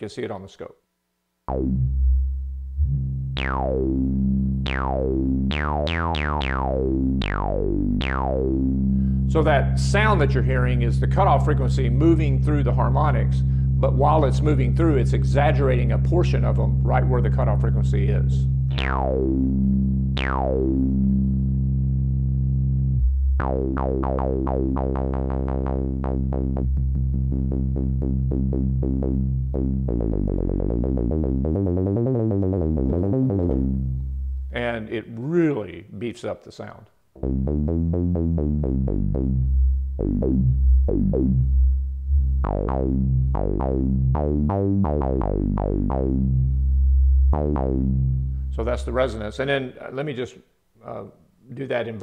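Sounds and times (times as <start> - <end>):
synthesizer note with resonant filter sweep: 1.5 - 17.2, 17.9 - 34.6, 37.2 - 48.9.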